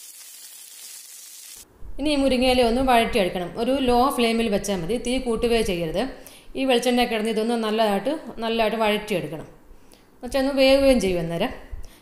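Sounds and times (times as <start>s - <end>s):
leaves sizzling in hot oil: 0.0s - 1.7s.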